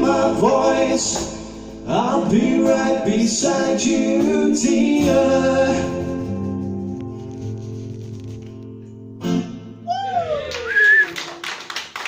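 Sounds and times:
high whistle: 9.9 - 11.3
audience cheering: 9.9 - 12.0
scattered clapping: 10.5 - 12.0.

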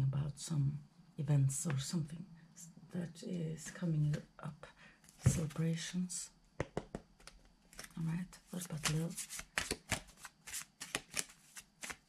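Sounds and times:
cards being shuffled: 7.2 - 8.0, 8.6 - 12.0.

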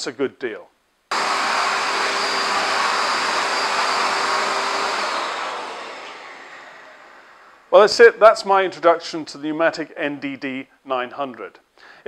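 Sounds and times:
vacuum extractor running: 1.1 - 7.7.

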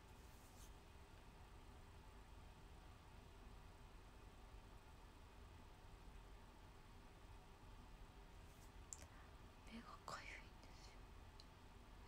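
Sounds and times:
faint whisper: 8.9 - 11.0.

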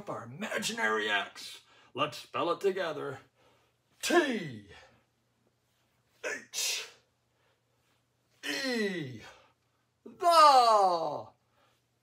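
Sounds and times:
man calling out drawn-out syllable: 10.1 - 11.3.

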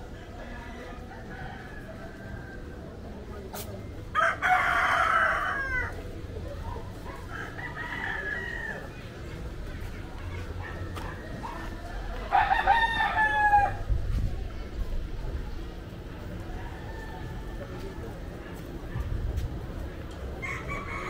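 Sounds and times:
rooster crowing: 4.1 - 6.0, 7.3 - 8.9, 12.3 - 13.9, 20.4 - 21.0.

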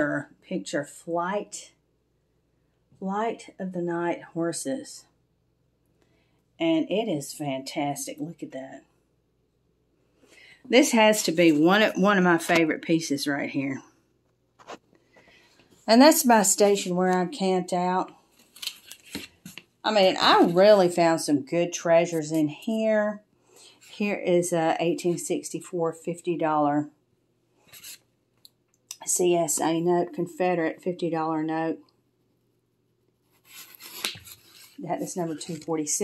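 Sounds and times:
woman's voice: 0.0 - 1.8, 3.0 - 5.1, 6.6 - 8.9, 10.7 - 13.9, 15.8 - 18.2, 19.8 - 23.2, 23.9 - 27.0, 28.9 - 31.9, 34.8 - 36.0
soft rustling: 33.2 - 35.8.

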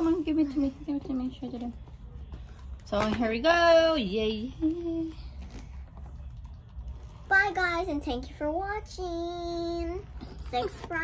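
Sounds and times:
child's voice: 7.3 - 11.0.

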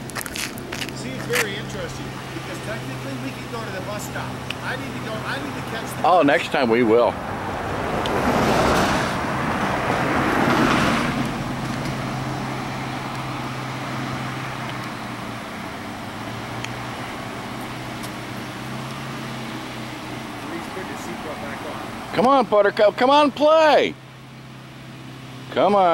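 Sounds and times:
car passing: 0.0 - 25.9
idling engine hum: 0.0 - 25.9.

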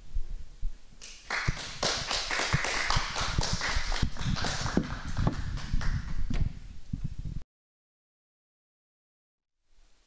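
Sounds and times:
applause: 1.0 - 6.3.

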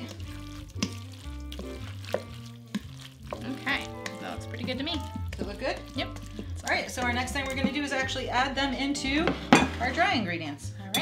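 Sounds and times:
spoon stirring wet batter: 0.0 - 9.7
background music: 0.0 - 11.0.

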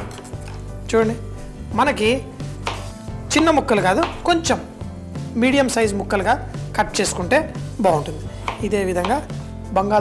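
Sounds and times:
knife cutting potato on board: 2.6 - 3.0, 7.9 - 9.4.

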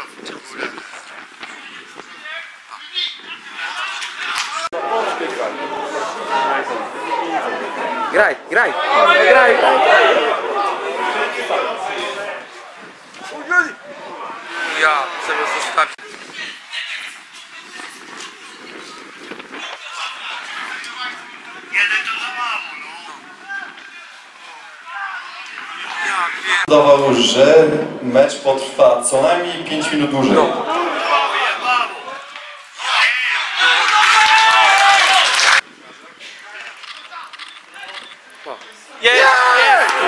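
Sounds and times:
spectators chattering: 0.0 - 40.0
distant shouts of footballers: 39.0 - 40.0.

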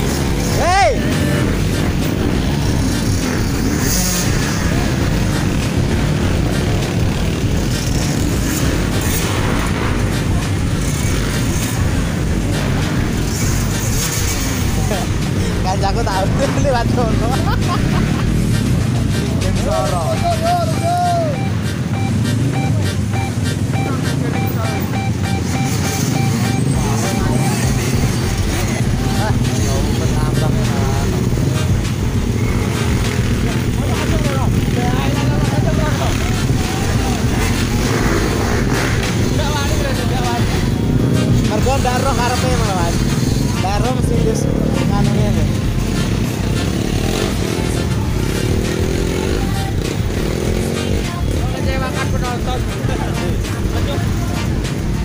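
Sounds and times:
dirt bike engines revving: 0.0 - 55.0
people shouting: 19.5 - 21.5.

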